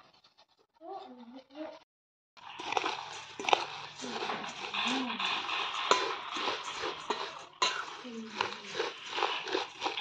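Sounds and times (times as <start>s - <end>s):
dry rustle of grains: 2.4s - 10.0s
spoon clinking against steel bowl: 2.6s - 10.0s.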